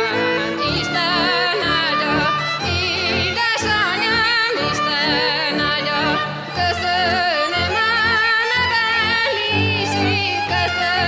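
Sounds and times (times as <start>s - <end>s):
woman singing folk song: 0.0s - 11.0s.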